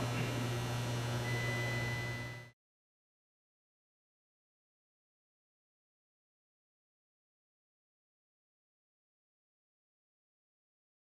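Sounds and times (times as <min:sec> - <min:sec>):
low electrical hum: 0:00.0 - 0:02.6
faint thin high tone: 0:01.2 - 0:02.6.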